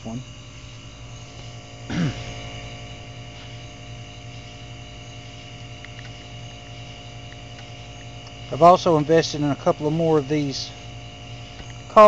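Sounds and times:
electrical mains hum: 0.0s - 12.0s
man clearing throat: 1.9s - 2.4s.

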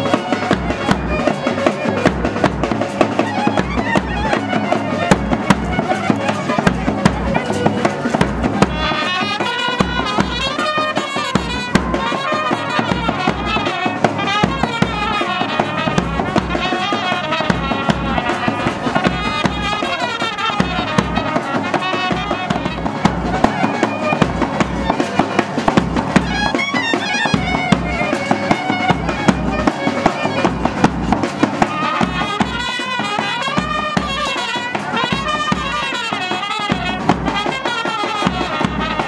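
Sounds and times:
brass: 0.0s - 39.0s
clarinet melody: 0.0s - 39.0s
drum beat: 0.0s - 39.0s
trumpets and wind instruments: 0.0s - 39.0s.

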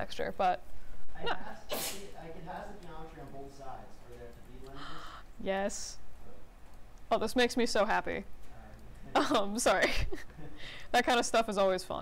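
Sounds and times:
person sneezing: 1.7s - 2.1s.

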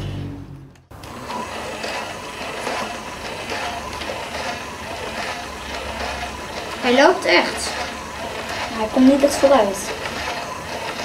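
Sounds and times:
toy robot motor whirring: 1.0s - 11.0s.

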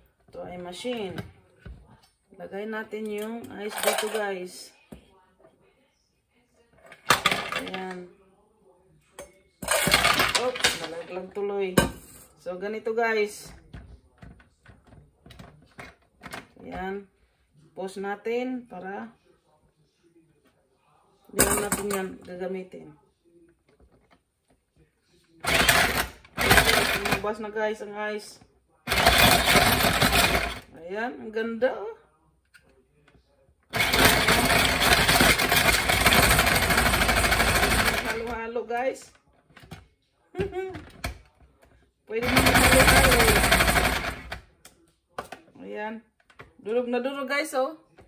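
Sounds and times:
ice shaver motor grinding ice: 25.4s - 27.2s, 28.9s - 30.7s, 33.7s - 38.4s, 42.2s - 44.4s.

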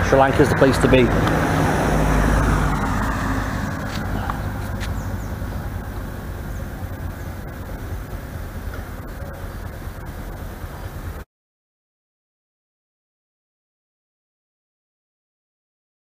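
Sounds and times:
vehicle driving past: 0.0s - 11.2s
outdoor background noise: 0.0s - 11.3s.

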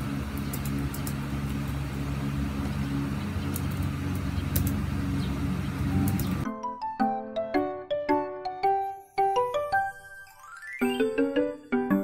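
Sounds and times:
low hum: 0.0s - 6.4s
laptop keys typing: 5.9s - 6.4s.

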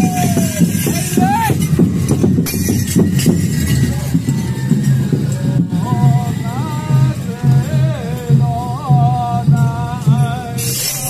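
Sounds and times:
rapid drum and percussion strokes: 0.0s - 11.0s.

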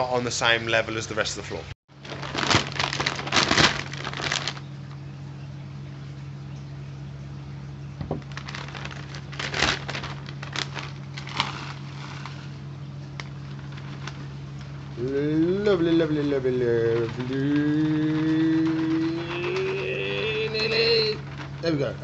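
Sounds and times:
steady low hum: 0.0s - 22.0s
dry rustling and crackling: 1.9s - 5.0s, 8.0s - 22.0s.

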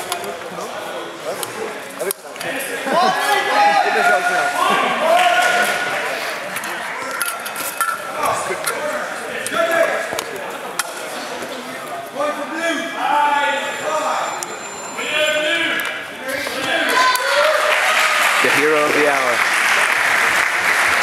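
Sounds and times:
indistinct voices talking: 0.0s - 19.5s.

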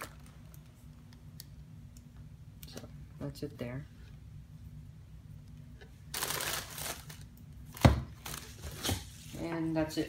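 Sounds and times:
plastic packaging rustling: 0.0s - 0.7s, 6.1s - 9.4s.

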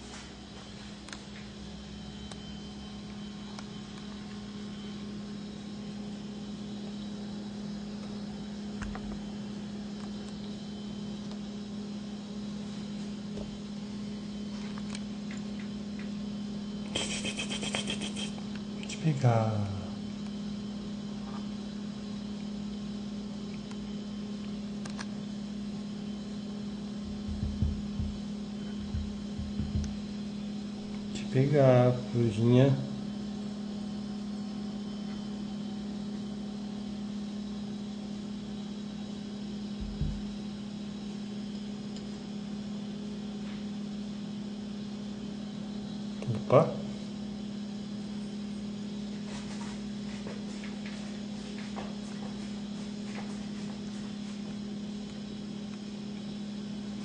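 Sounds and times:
steady low hum: 0.0s - 57.0s
low rumbling bumps: 27.1s - 28.2s, 28.8s - 30.0s.

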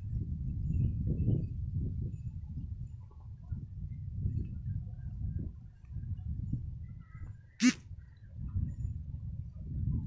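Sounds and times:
short animal-like call: 7.6s - 7.8s.

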